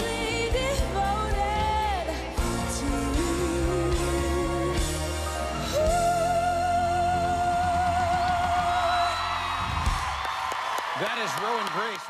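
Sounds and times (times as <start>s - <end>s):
audience whooping: 7.9s - 12.0s.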